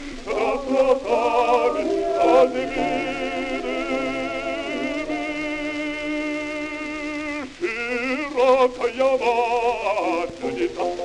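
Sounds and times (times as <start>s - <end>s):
operatic male bass singing: 0.3s - 11.0s.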